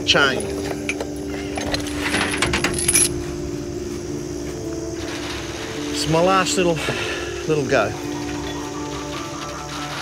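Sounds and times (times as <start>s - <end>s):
chain clanking: 0.0s - 3.4s.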